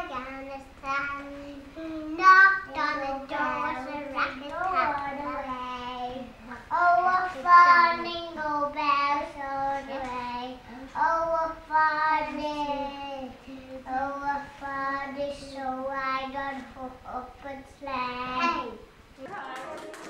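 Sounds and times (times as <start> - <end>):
children singing: 2.2 - 10.3.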